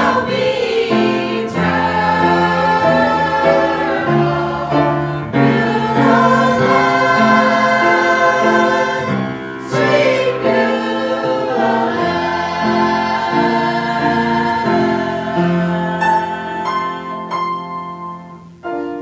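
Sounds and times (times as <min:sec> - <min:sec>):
church choir singing: 0:00.0 - 0:19.0.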